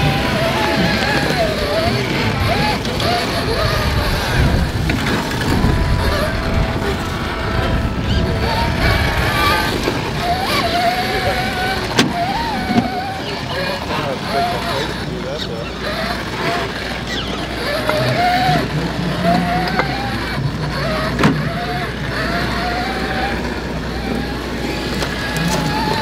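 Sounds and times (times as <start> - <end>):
electric motor whining: 0.0 - 26.0.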